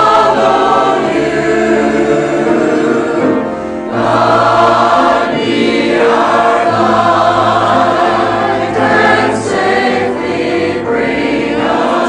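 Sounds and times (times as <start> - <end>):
mixed choir singing chords: 0.0 - 12.0.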